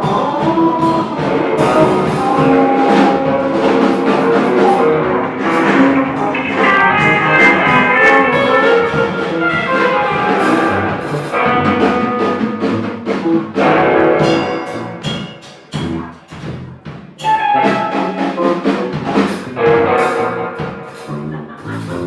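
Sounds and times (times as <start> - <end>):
electric guitars: 0.0 - 16.6, 17.2 - 22.0
drum kit with cymbals: 0.0 - 22.0.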